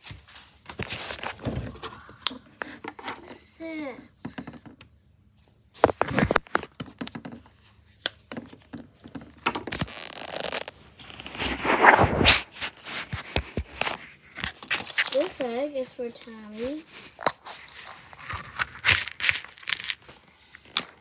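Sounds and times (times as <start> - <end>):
objects scraped on a desk: 11.2 - 14.2.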